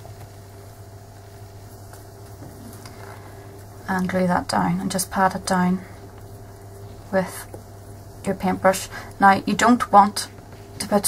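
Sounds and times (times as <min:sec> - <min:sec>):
faint steady tones: 0:00.0 - 0:11.0
low background hum: 0:00.0 - 0:11.0.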